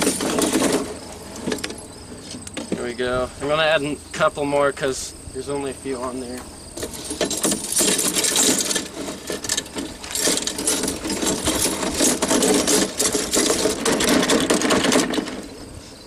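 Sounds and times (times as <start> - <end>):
metal traps and chains clinking: 0.0 - 2.0, 6.7 - 15.7.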